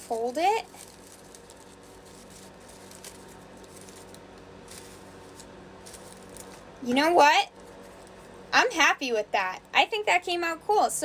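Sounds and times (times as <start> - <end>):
paper filter rustling and crinkling: 0.0 - 8.4
low steady hum: 0.0 - 11.0.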